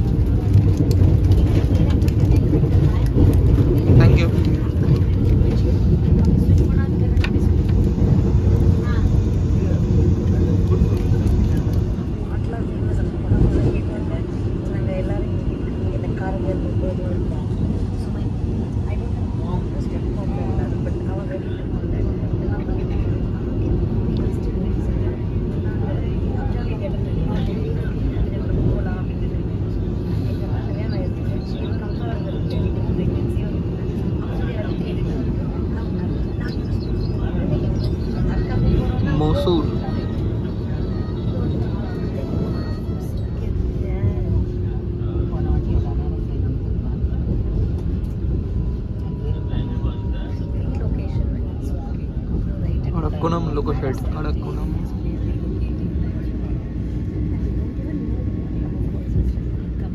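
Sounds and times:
indistinct passenger voices: 0.0s - 59.9s
train rumbling: 0.0s - 59.9s.

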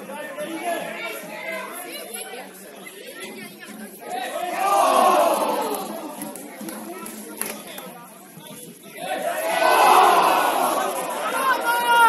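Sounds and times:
voices calling and talking: 0.0s - 12.0s.

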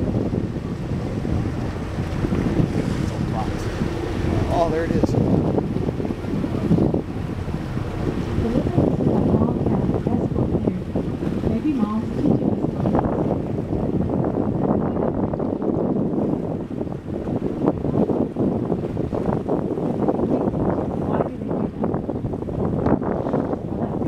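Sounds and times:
sea washing around boat: 0.0s - 24.0s
wind buffeting microphone: 0.0s - 24.0s.

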